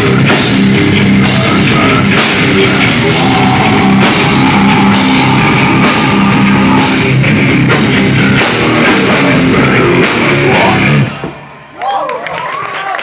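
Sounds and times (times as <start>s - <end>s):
distorted electric guitar: 0.0s - 11.9s
pounding drum kit: 0.0s - 12.4s.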